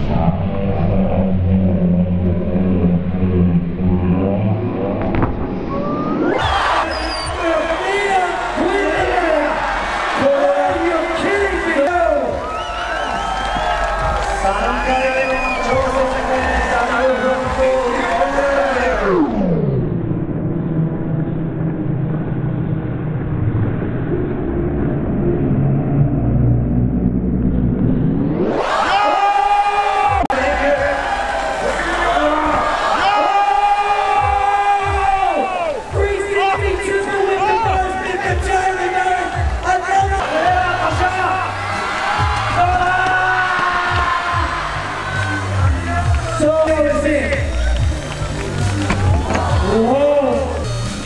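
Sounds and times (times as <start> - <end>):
deep muffled drone: 0.0 - 6.6, 15.3 - 28.7
muffled soundtrack with deep bass hum: 0.0 - 6.6, 8.6 - 28.8
crowd noise: 0.0 - 19.5, 28.2 - 51.0
slowed down music: 0.0 - 51.0.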